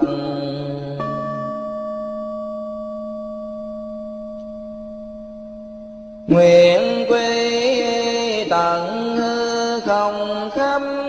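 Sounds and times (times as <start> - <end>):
bowl bell ringing: 0.9 - 6.8.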